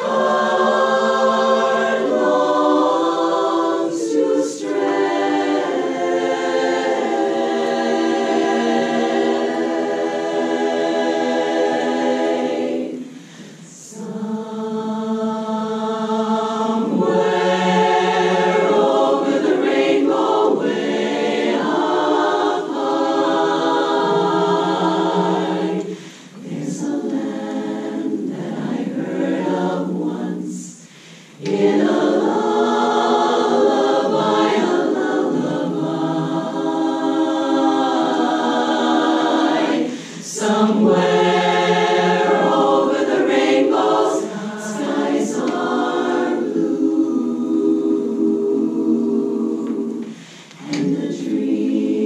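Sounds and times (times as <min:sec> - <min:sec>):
women's a cappella chorus singing: 0:00.0 - 0:52.0.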